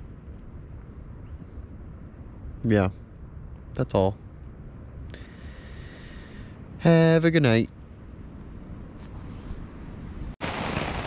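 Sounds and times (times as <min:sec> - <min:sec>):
low rumbling background noise: 0:00.0 - 0:10.6.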